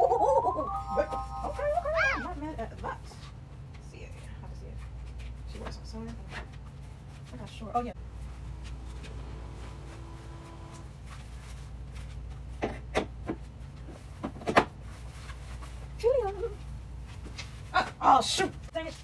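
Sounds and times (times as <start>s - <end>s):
short pitch-bending whine: 0.0s - 2.2s, 8.2s - 11.0s
steady low hum: 0.0s - 17.8s.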